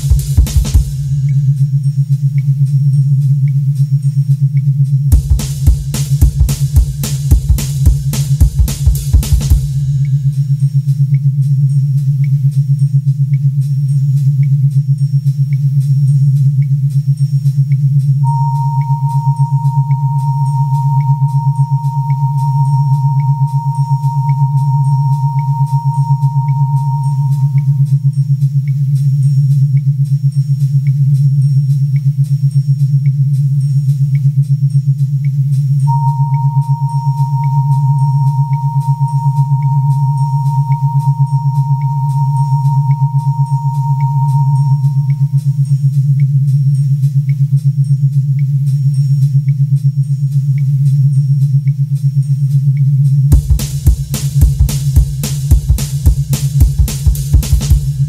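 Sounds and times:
pulsing low synth drone: 0.0 - 13.9, 18.2 - 34.9, 35.8 - 48.0
short high blips ticking: 18.2 - 28.0, 35.9 - 45.6
high pure synth tone: 18.2 - 28.4, 35.9 - 45.9, 53.3 - 58.0.

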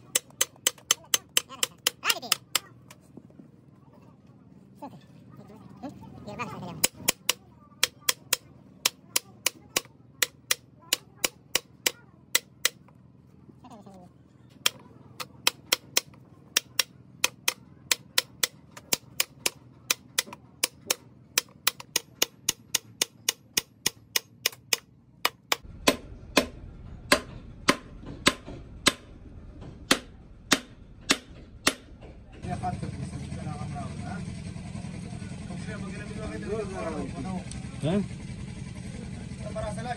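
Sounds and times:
hammer tapping on steel: 0.0 - 3.0, 6.8 - 12.9, 14.6 - 29.1.

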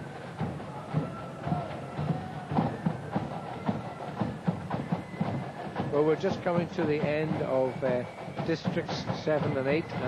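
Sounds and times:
faint flutes: 0.0 - 10.0
steady drum beat: 0.0 - 10.0.

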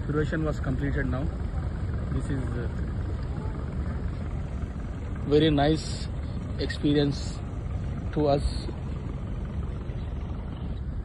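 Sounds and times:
boat engine running: 0.0 - 11.0
water and air noise: 0.0 - 11.0.

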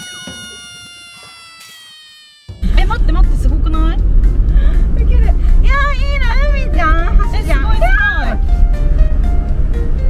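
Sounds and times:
meow-like sliding cry: 0.0 - 2.6.

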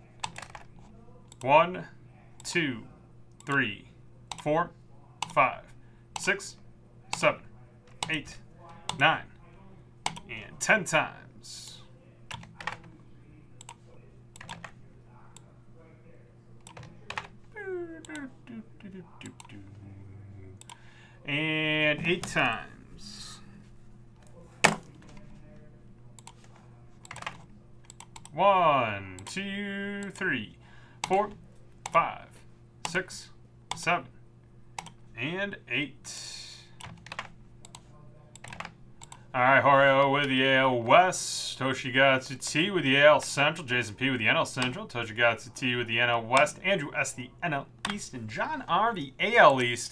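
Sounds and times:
keyboard clicks: 0.2 - 1.5, 10.0 - 10.3, 12.3 - 12.9, 14.4 - 14.7, 16.6 - 17.3, 26.2 - 28.3, 34.8 - 35.0, 36.8 - 39.2
person murmuring: 17.5 - 20.6
computer mouse clicks: 26.2 - 28.3.

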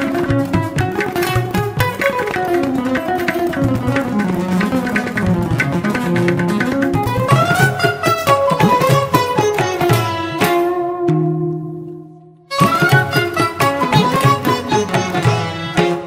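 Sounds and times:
plucked string melody: 0.0 - 16.0
tabla strokes: 0.0 - 16.0.

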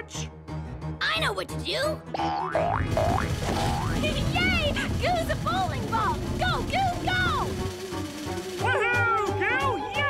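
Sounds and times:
background music: 0.0 - 10.0
cartoon boing sound effects: 2.2 - 4.0.

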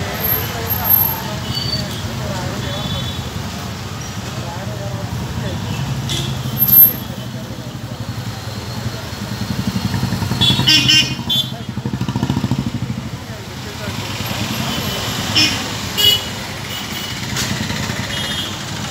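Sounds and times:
busy street traffic: 0.0 - 18.9
scooters and motorcycles passing: 7.3 - 18.9.

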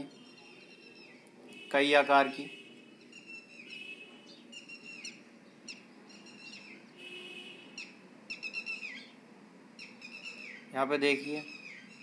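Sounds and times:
bird chirping: 0.0 - 1.7, 2.5 - 9.2, 9.8 - 12.0
faint low background noise: 0.0 - 12.0.

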